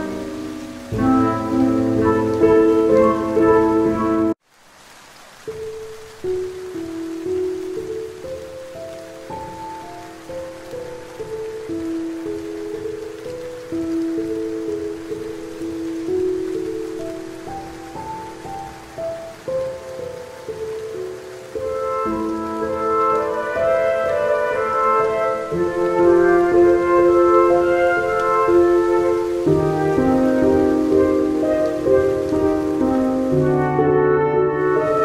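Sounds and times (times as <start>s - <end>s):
slow soft instrumental music: 0.0s - 4.4s, 5.4s - 35.0s
steady rain: 0.0s - 35.0s.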